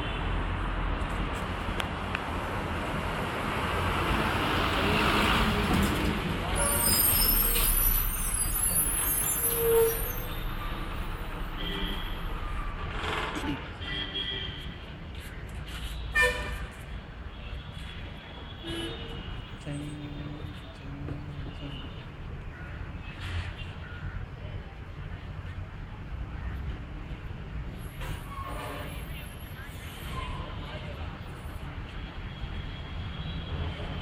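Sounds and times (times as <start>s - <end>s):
high-pitched brake squeal: 6.4s - 14.5s, 27.8s - 30.8s
vehicle engines running: 10.3s - 13.9s.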